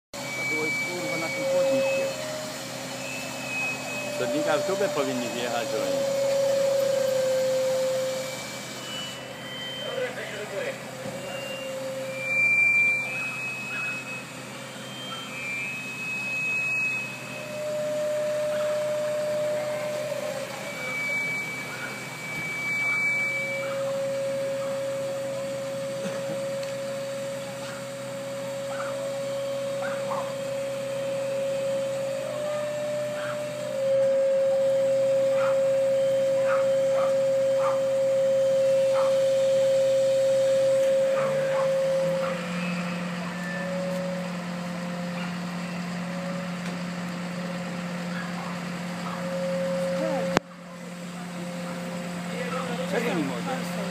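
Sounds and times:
long steady tones: 0.2 - 53.9
low machine hum: 0.2 - 53.9.

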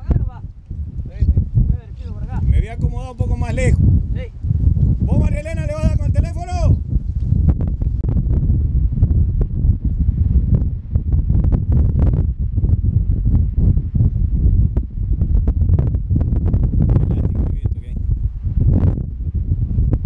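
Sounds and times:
strong wind on microphone: 0.0 - 20.0.

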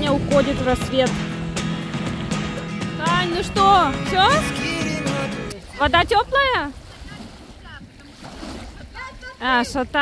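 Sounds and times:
wind buffeting microphone: 0.0 - 4.5, 5.5 - 10.0
lake waves lapping at shore: 0.0 - 10.0.

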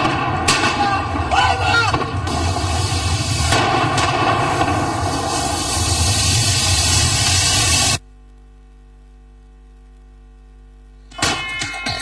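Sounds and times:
explosion bangs: 0.0 - 8.0
loud continuous din: 0.0 - 8.0.

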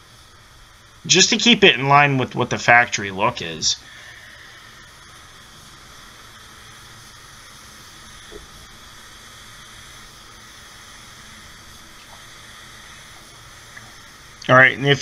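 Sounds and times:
spray gun hissing: 0.0 - 15.0.

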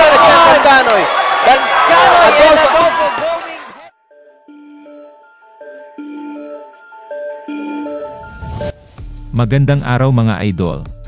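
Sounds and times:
arena crowd noise: 0.0 - 3.9.

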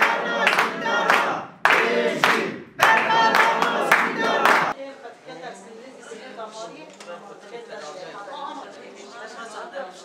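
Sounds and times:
hands clapping in time: 0.0 - 4.8
women singing together: 0.0 - 4.8.

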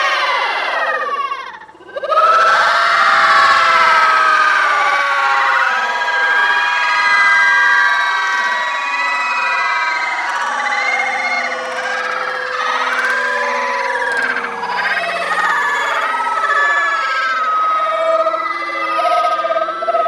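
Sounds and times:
children screaming: 0.0 - 20.0.

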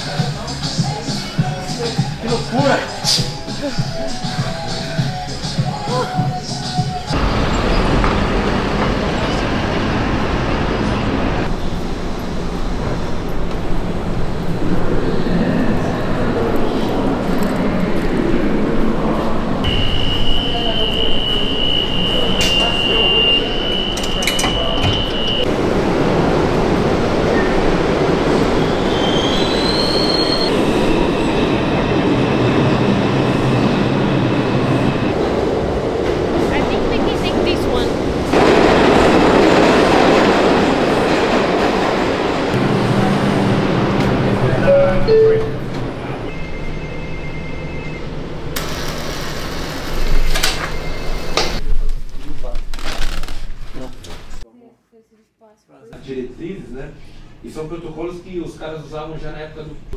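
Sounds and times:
subway train rumble: 0.0 - 52.6
high wheel squeals: 19.7 - 25.5, 28.5 - 35.1, 44.6 - 51.6.

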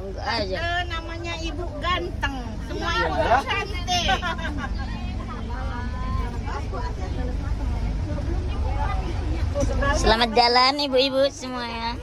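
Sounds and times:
bus engine idling: 0.0 - 12.0
women chattering: 0.0 - 12.0.

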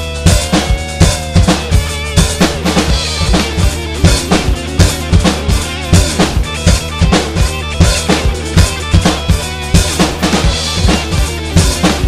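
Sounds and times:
recorded bass and guitar: 0.0 - 12.0
rock drum kit playing: 0.0 - 12.0.

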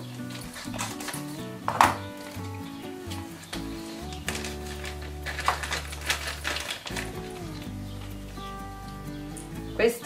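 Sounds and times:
plastic bag crinkling: 0.1 - 8.9.

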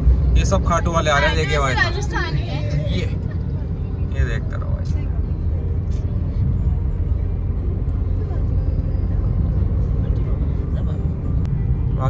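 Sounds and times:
car engine rumble: 0.0 - 12.0
tyre road noise: 0.0 - 12.0.

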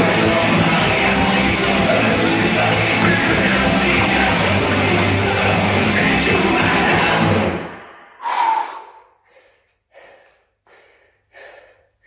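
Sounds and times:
man gasping exhale: 8.2 - 12.0
man panting: 8.2 - 12.0.

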